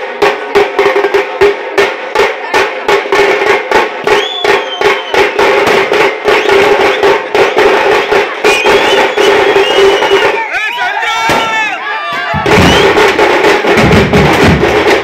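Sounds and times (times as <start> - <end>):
frame drums beaten with sticks: 0.0 - 10.5, 11.2 - 15.0
crowd cheering and yelling: 6.2 - 13.8.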